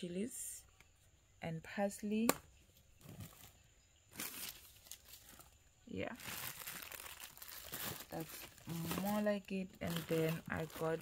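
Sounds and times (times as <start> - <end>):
plastic packaging crinkling: 4.1 - 11.0.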